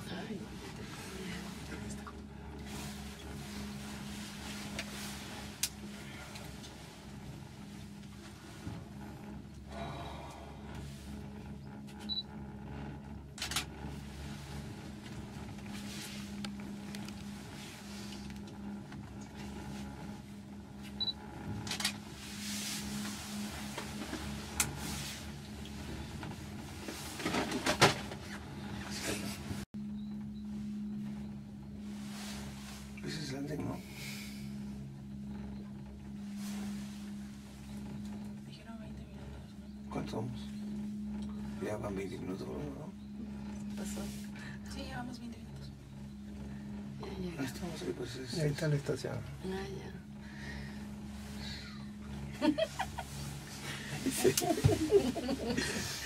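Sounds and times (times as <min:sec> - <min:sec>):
cable car hum and rumble: 0:00.0 - 0:56.0.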